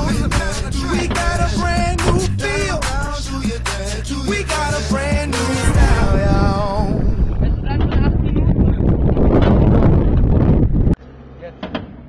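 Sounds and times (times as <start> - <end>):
wind buffeting microphone: 0.0 - 3.4, 5.6 - 11.0.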